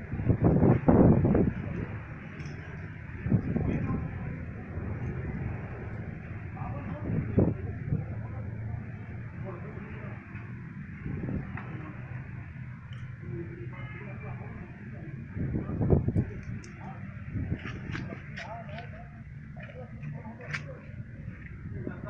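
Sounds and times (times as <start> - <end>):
loud low rumble: 0.0 - 22.0
steady low hum: 0.0 - 22.0
indistinct background voices: 1.4 - 22.0.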